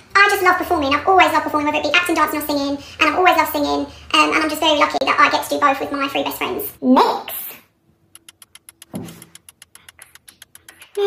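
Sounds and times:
countdown timer ticking: 0:08.2 - 0:11.0.

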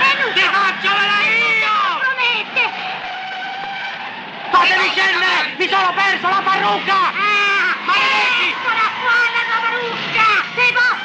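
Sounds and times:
car driving off: 0:00.0 - 0:11.0
brief shouts: 0:04.5 - 0:11.0.

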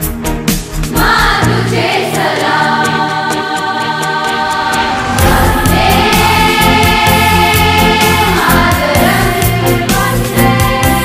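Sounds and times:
backing music with bass and beat: 0:00.0 - 0:11.0
girls' choir singing: 0:00.9 - 0:11.0.

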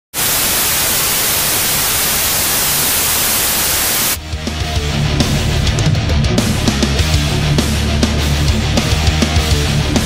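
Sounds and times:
loud static hiss: 0:00.1 - 0:04.2.

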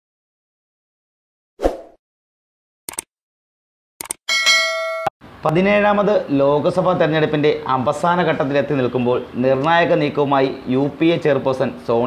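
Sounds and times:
quick clicks: 0:02.9 - 0:03.1, 0:04.0 - 0:04.2
bright bell chime: 0:04.3 - 0:05.1.

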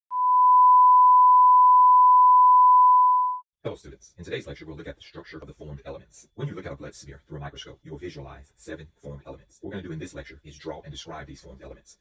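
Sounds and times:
steady electronic beep: 0:00.1 - 0:03.4.

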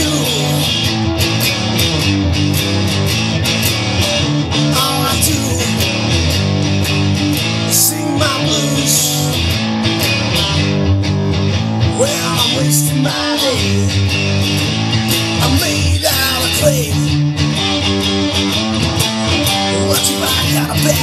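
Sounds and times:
bent guitar notes: 0:00.0 - 0:21.0
bluesy rock guitars and bass: 0:00.0 - 0:21.0.

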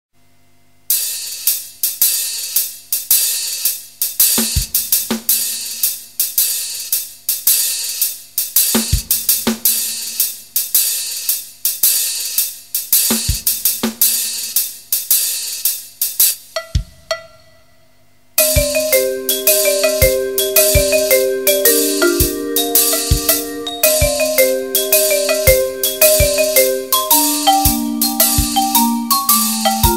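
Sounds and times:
cymbal and hi-hat strokes: 0:00.9 - 0:17.4, 0:18.4 - 0:29.9
tuned mallet percussion notes: 0:18.4 - 0:29.9.

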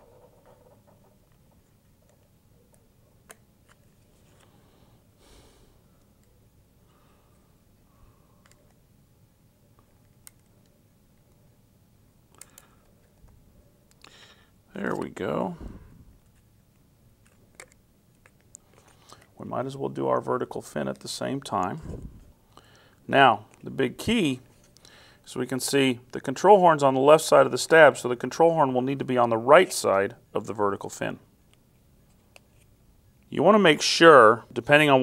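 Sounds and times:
small clicks and rustling: 0:16.2 - 0:19.4.

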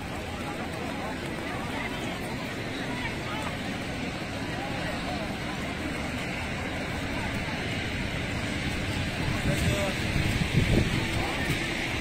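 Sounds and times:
faint distant voices: 0:00.0 - 0:12.0
heavy rain: 0:00.0 - 0:12.0
road traffic: 0:00.0 - 0:12.0.

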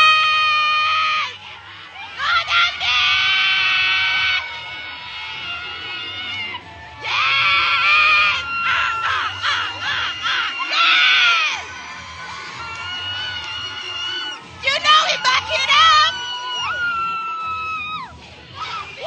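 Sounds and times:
cheer music with steady beat: 0:00.0 - 0:19.0
high-pitched screams and shouts: 0:00.0 - 0:19.0.

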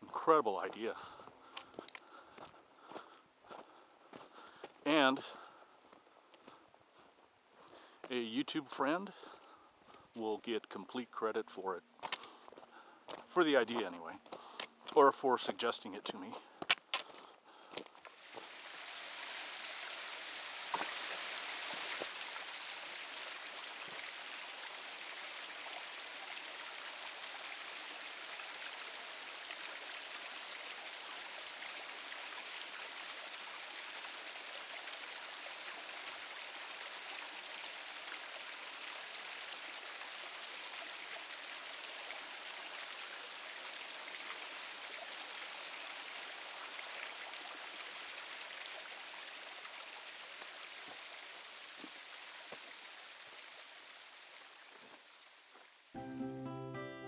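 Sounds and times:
waterfall splashing over rocks: 0:17.8 - 0:56.0.

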